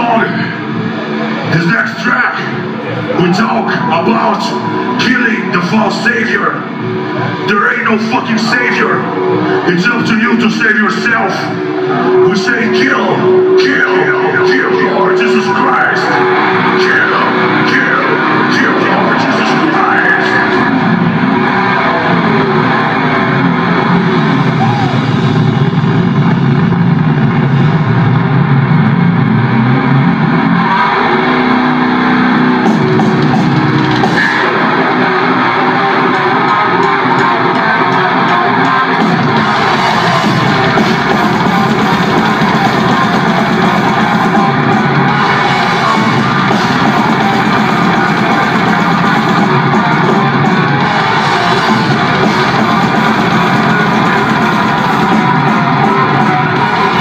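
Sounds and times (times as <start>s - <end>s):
death metal band playing live: 11.5s - 57.0s.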